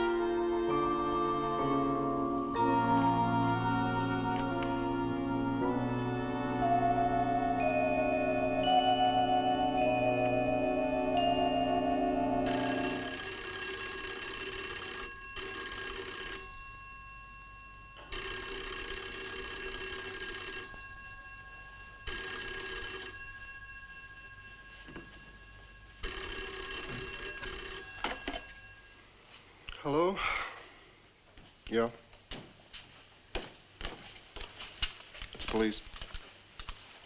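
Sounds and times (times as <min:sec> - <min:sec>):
telephone bell ringing: 0:07.6 - 0:29.1.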